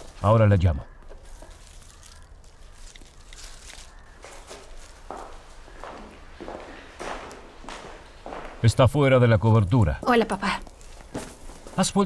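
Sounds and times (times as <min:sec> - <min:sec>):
footsteps on wooden floor: 0:04.1 - 0:08.8, 0:10.5 - 0:11.8.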